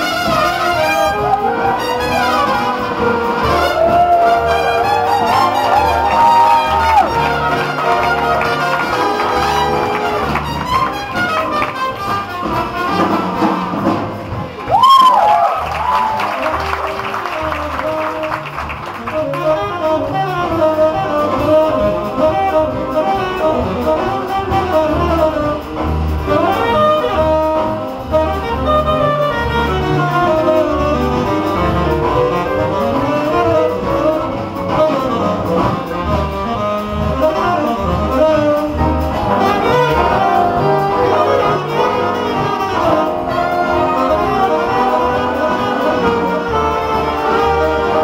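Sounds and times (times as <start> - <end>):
saxophone solo: 0.0 - 13.6, 14.8 - 48.0
big band jazz: 0.0 - 48.0.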